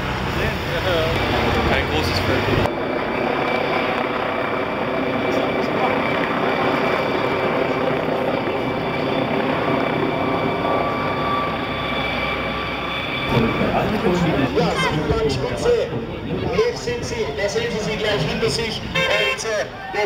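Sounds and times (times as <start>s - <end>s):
helicopter rotor drone: 0.0s - 20.0s.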